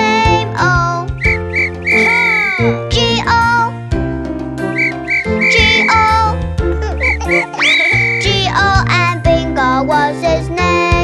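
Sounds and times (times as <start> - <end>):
children's song backing music: 0.0 - 11.0
whistle toots: 1.2 - 2.6, 4.6 - 6.1, 7.0 - 8.3.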